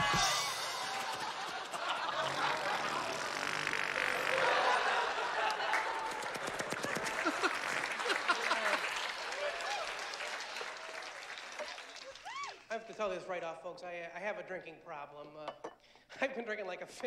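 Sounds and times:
crowd voices: 0.0s - 3.3s
audience applause: 0.0s - 12.7s.

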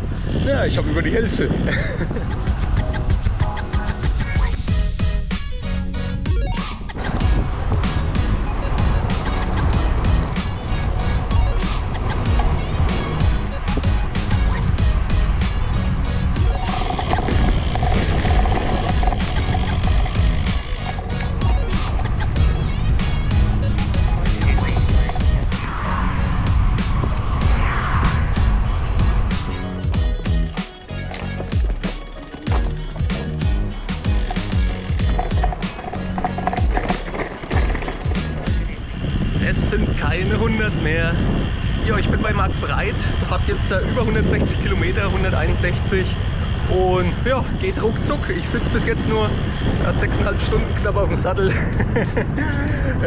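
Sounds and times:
wind buffeting microphone: 0.0s - 5.3s, 6.1s - 53.0s
bike tyres rolling on asphalt: 6.9s - 53.0s.

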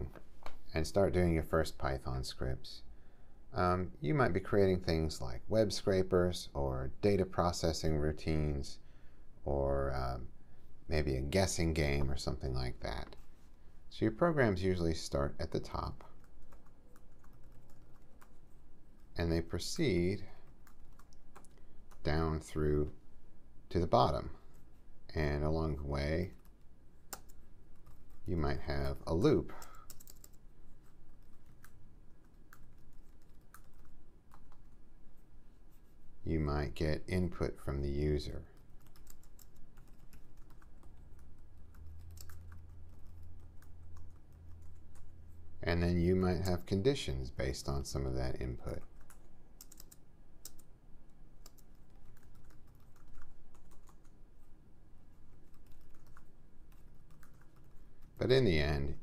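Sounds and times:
typing on computer keyboard: 16.0s - 18.4s, 20.4s - 22.0s, 26.3s - 28.3s, 29.5s - 30.4s, 31.1s - 34.8s, 38.5s - 45.1s, 48.7s - 50.7s, 51.4s - 54.2s, 55.4s - 58.2s.

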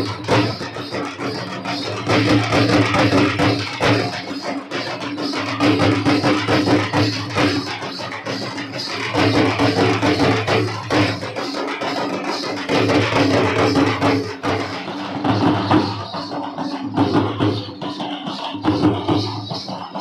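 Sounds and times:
drums beating steady rhythm: 0.0s - 20.0s.

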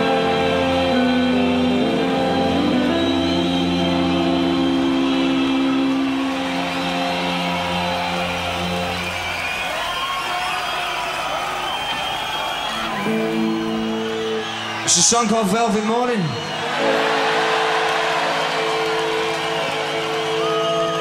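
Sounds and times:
electric guitar chords ringing: 0.0s - 9.4s, 12.7s - 14.8s
crowd cheering and whooping: 2.2s - 21.0s.

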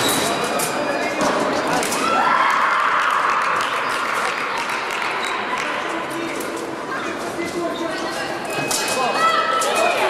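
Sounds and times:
spectators clapping and cheering: 2.1s - 5.8s.

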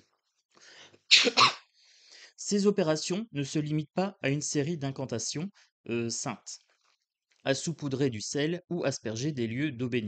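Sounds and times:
person sneezing: 1.1s - 1.7s.

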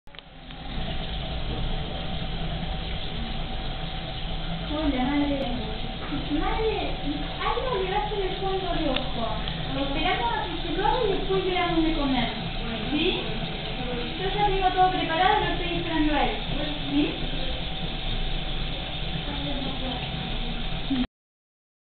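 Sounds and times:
faint constant tone: 0.1s - 21.1s
faint steady whine: 0.1s - 21.1s
steady low hum: 0.1s - 21.1s.

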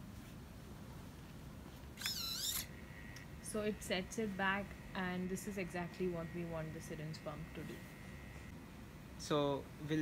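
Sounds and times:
servo motor whining: 2.0s - 2.7s.

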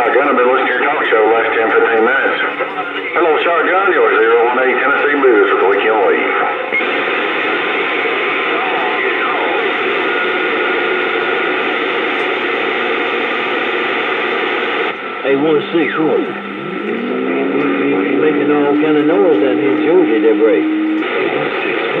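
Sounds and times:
garbled radio voice: 0.0s - 6.6s, 15.2s - 22.0s
radio static hiss: 0.0s - 22.0s.

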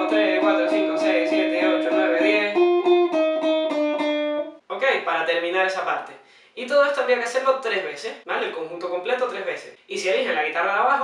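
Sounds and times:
electric guitar picked notes: 0.0s - 4.6s.

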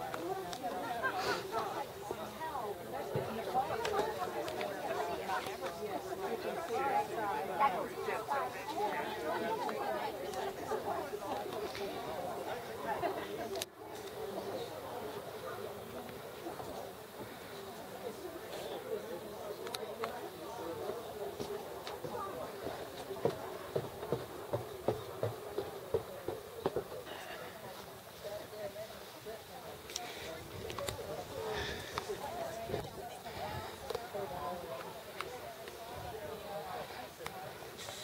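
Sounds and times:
people chatting: 0.0s - 38.0s.

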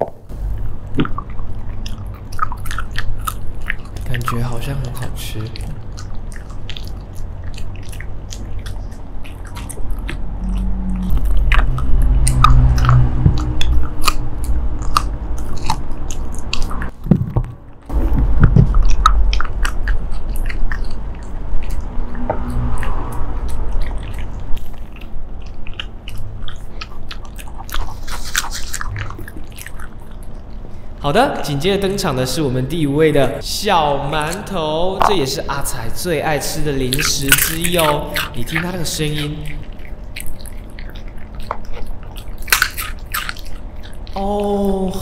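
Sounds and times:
dog chewing a treat: 0.0s - 32.0s, 34.2s - 44.7s.

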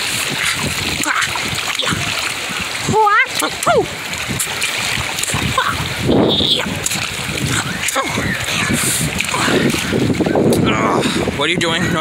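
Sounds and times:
seawater splashing: 0.0s - 12.0s.

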